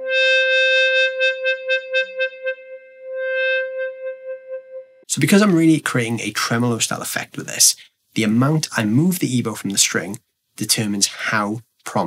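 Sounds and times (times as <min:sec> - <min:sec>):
pulsing sustained electric guitar note: 0:00.0 - 0:05.0.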